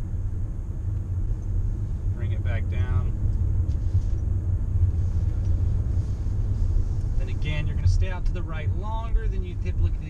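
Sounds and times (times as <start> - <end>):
car engine and tyre rumble: 0.0 - 10.0.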